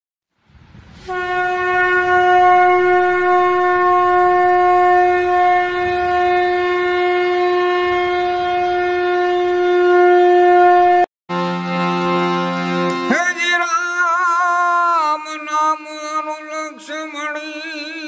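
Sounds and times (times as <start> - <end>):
conch shell blast: 1.0 - 11.0
held chord of several notes: 11.3 - 15.3.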